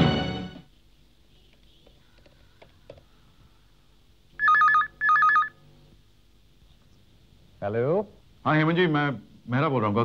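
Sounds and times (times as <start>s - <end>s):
electronic telephone ringer trilling: 4.4s - 5.6s.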